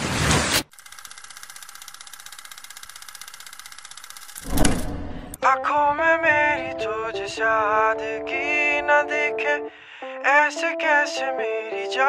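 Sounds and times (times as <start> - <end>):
film projector clatter: 0.7 - 4.8.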